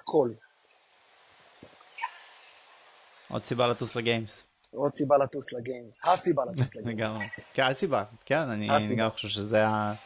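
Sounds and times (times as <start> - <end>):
faint microphone hiss: 0.0 - 10.0.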